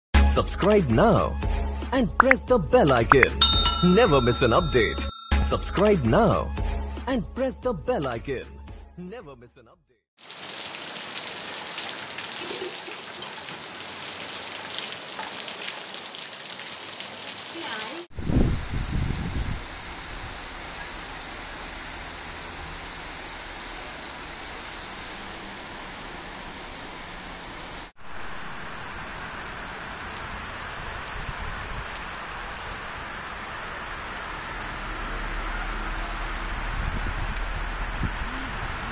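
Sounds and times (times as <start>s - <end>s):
heavy rain falling: 10.2s - 38.9s.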